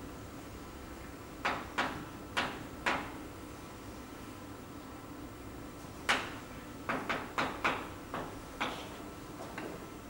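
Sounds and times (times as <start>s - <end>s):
room hum: 0.0s - 10.0s.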